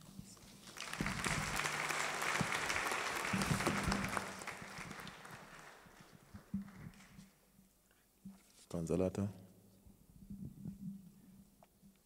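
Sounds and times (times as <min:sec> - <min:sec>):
audience applauding: 0:00.6 - 0:07.2.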